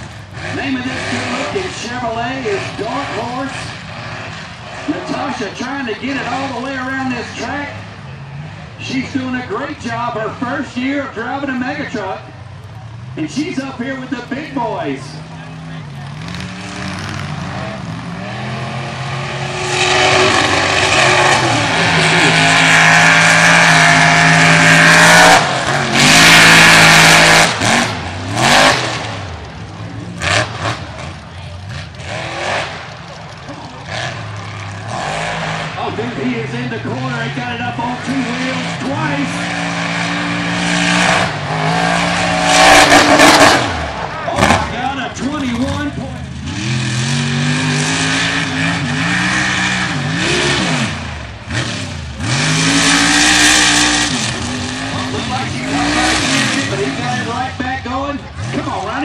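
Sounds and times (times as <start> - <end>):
truck engines revving hard: 0.0 - 59.0.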